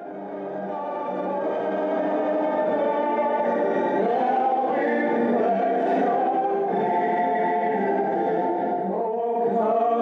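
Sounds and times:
choir singing sustained chords: 0.0s - 10.0s.

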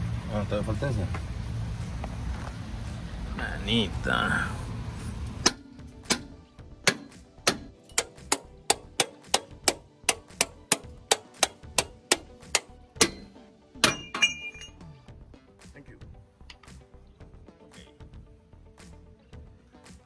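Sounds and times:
sharp knocks: 5.4s - 14.2s.

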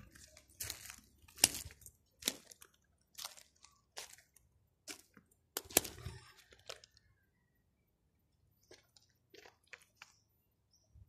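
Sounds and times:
footsteps crunching on gravel: 0.0s - 6.9s, 8.6s - 10.2s.

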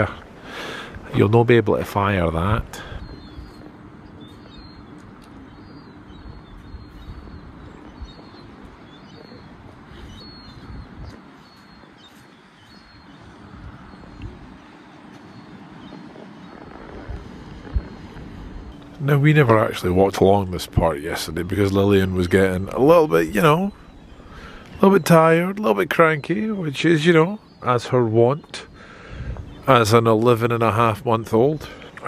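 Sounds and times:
wind rumble on microphone: 0.0s - 24.8s, 28.6s - 32.0s
faint high bird chirps: 2.8s - 18.0s.

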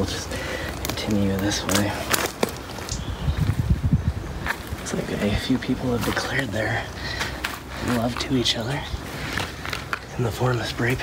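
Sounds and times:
footsteps in flip-flops on gravel: 0.0s - 3.8s, 4.4s - 11.0s.

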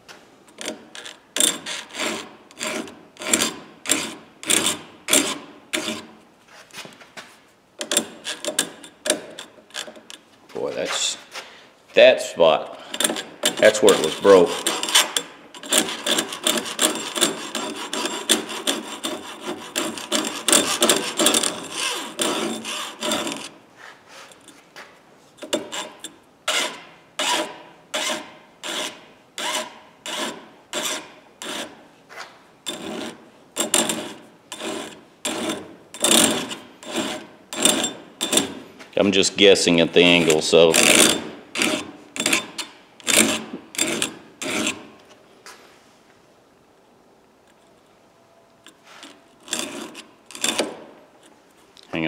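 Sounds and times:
hand file rasping on steel: 0.6s - 6.1s, 12.9s - 23.6s, 25.4s - 31.8s, 32.7s - 38.6s, 40.2s - 44.9s, 48.9s - 50.7s.

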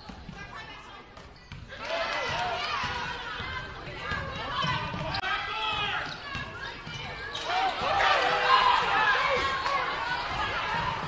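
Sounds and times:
sneakers squeaking: 0.0s - 11.0s.

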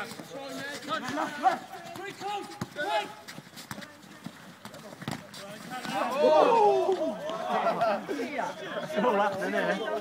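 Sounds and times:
running feet: 0.0s - 10.0s
ball being kicked: 3.6s - 6.1s
distant shouts: 5.9s - 8.9s.

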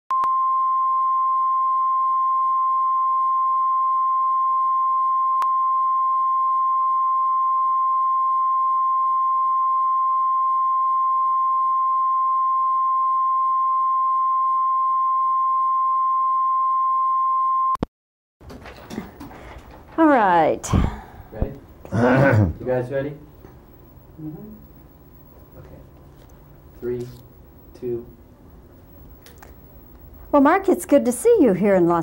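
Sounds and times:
steady line-up tone: 22.6s - 32.0s.

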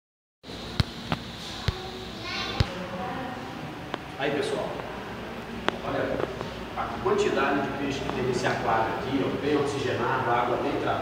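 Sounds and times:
steady indoor hum: 0.4s - 11.0s.

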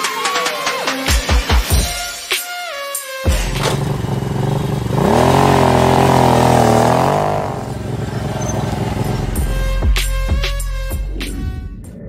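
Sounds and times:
motorcycle engine revving: 3.3s - 10.4s.

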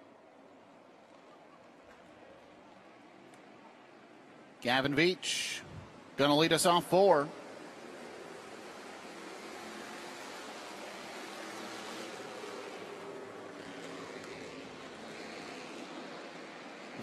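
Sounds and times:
distant race cars: 0.0s - 17.0s.

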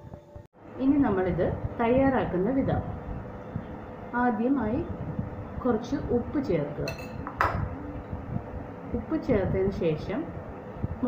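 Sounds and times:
spoon clinking against glass bowl: 6.8s - 7.6s.

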